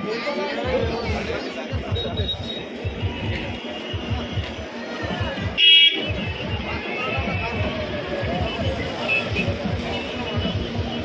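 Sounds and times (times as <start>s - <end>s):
steady low beat: 0.7s - 11.0s.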